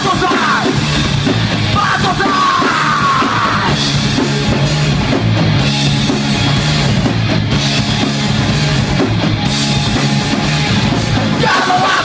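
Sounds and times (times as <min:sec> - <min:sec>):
person yelling vocals: 0:00.0 - 0:00.8, 0:01.7 - 0:03.8, 0:11.4 - 0:12.0
live rock band playing: 0:00.0 - 0:12.0.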